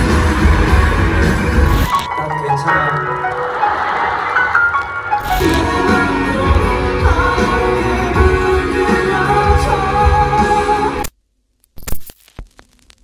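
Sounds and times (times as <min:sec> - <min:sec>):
rock band music: 0:00.0 - 0:11.0.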